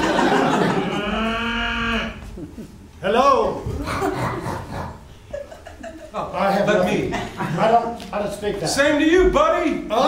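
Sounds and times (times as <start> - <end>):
person imitating cow mooing: 0.8 - 2.3.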